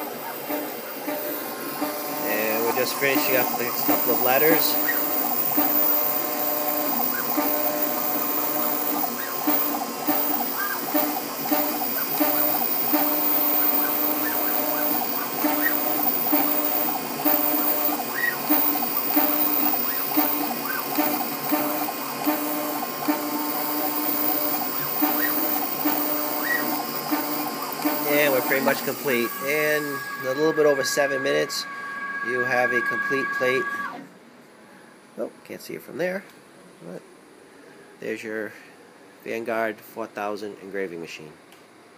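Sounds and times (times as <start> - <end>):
engraving machine whirring: 0.0 - 34.1.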